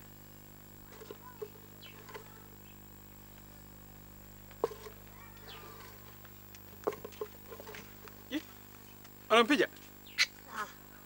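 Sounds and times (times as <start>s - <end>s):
faint scattered calls: 0.8s - 3.0s, 4.6s - 11.0s.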